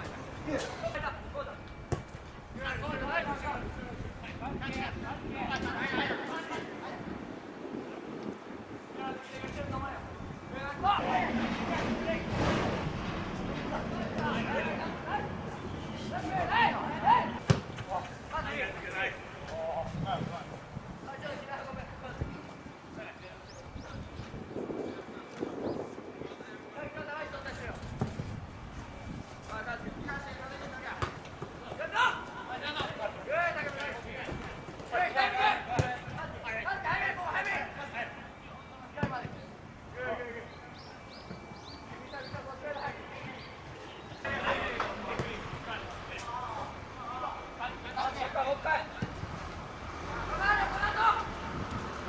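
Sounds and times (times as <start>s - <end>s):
wind blowing on microphone: 2.4s - 30.7s
people shouting outdoors: 13.8s - 17.4s, 50.0s - 51.4s.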